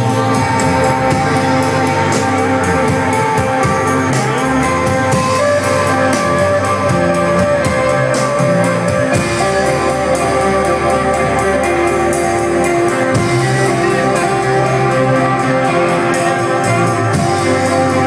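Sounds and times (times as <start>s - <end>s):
bass guitar notes: 0.0s - 18.0s
drum kit and cymbals: 0.0s - 18.0s
electric guitar: 0.0s - 18.0s.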